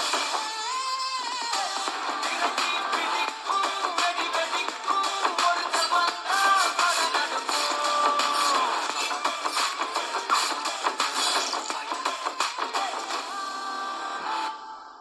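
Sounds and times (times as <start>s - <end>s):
upbeat song with fast beat: 0.0s - 14.7s
person singing: 0.0s - 15.0s.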